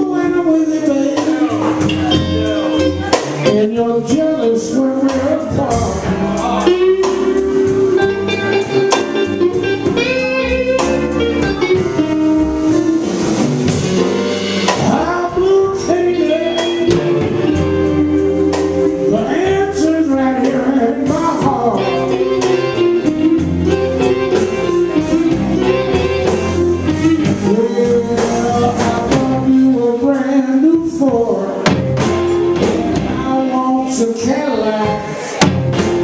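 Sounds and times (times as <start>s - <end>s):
person singing: 0.0s - 12.7s, 14.7s - 35.5s
blues band playing: 0.0s - 36.0s
drums: 0.0s - 36.0s
electric guitar phrase: 5.5s - 29.6s.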